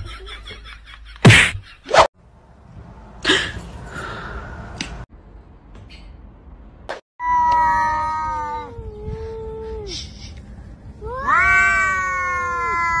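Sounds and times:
cat yowling: 0:11.1 - 0:13.0.

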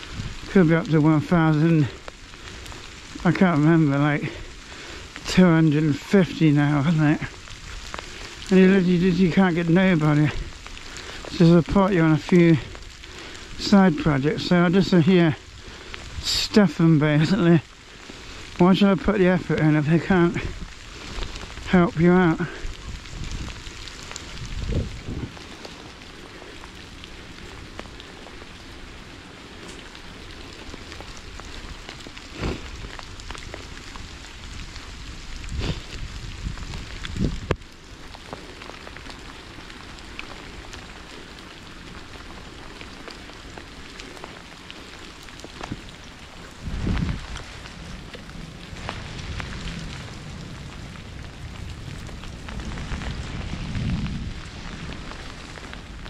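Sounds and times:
rain pattering: 0:00.0 - 0:56.0.

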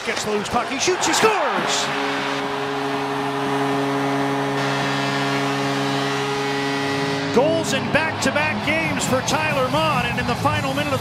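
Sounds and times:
crowd cheering: 0:00.0 - 0:11.0
goal horn low blast: 0:00.1 - 0:10.2.

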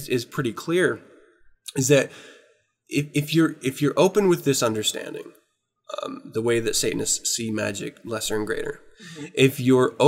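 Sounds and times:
man speaking: 0:00.0 - 0:02.3, 0:02.9 - 0:05.3, 0:05.9 - 0:10.0
faint breath: 0:02.1 - 0:02.7, 0:08.9 - 0:09.4.

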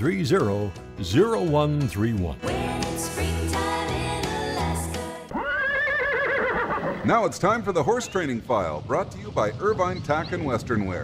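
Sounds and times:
horse whinnying: 0:05.3 - 0:07.2.

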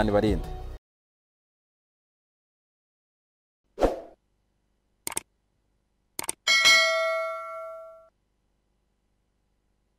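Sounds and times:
mouse clicks: 0:05.1 - 0:05.3, 0:06.2 - 0:06.4
notification bell ding: 0:06.5 - 0:08.1.

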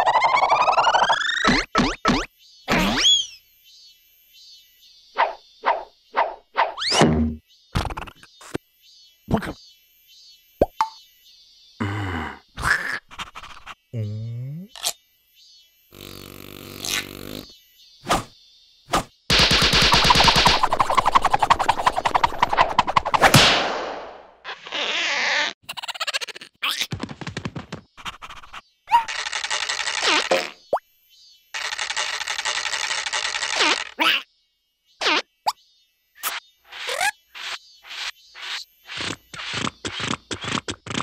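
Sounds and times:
cartoon straw rattling pulses: 0:19.7 - 0:23.3, 0:28.0 - 0:30.6, 0:31.6 - 0:34.2.

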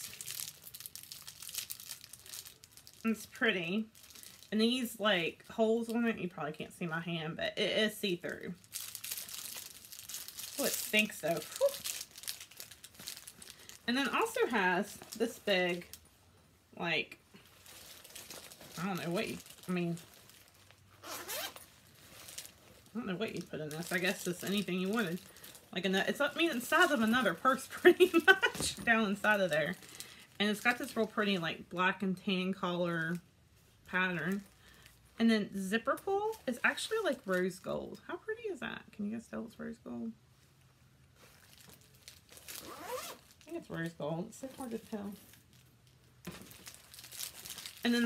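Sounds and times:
plastic packaging crinkling: 0:00.0 - 0:04.8, 0:08.1 - 0:16.1, 0:17.4 - 0:31.5, 0:35.9 - 0:37.7, 0:41.2 - 0:48.0
zipper rasp: 0:21.0 - 0:21.7, 0:42.6 - 0:43.3.

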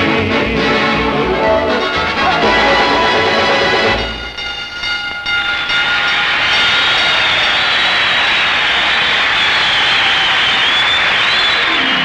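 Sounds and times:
held orchestral note: 0:01.0 - 0:04.8
fire alarm ringing: 0:02.3 - 0:08.3.

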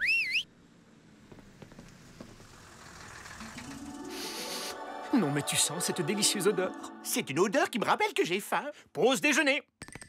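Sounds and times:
cartoon whistle: 0:00.0 - 0:00.4.

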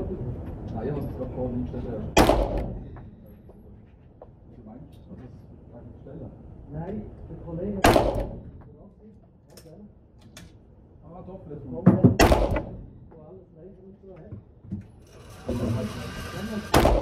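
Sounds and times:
pistol shots ringing indoors: 0:02.2 - 0:02.8, 0:07.8 - 0:08.5, 0:12.2 - 0:12.8.

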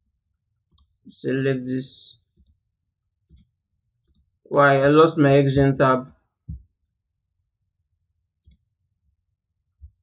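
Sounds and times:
computer mouse clicks: 0:00.7 - 0:01.0, 0:03.2 - 0:04.3, 0:08.4 - 0:08.7.

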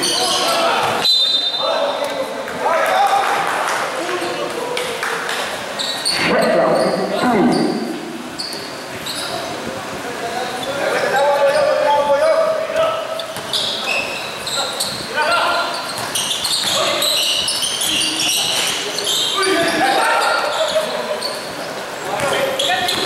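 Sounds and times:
short high squeaks: 0:05.8 - 0:09.5, 0:13.2 - 0:21.8, 0:22.4 - 0:23.0
basketball bouncing on court: 0:13.3 - 0:13.8, 0:15.8 - 0:18.8, 0:22.2 - 0:23.0.

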